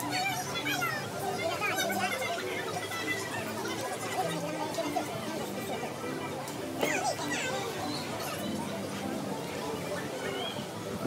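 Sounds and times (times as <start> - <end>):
children's voices at play: 0.0 - 11.0.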